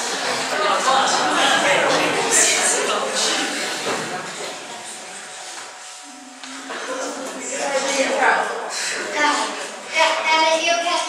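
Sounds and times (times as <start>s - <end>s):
quiet indistinct talking: 0.0s - 11.0s
room noise: 0.0s - 11.0s.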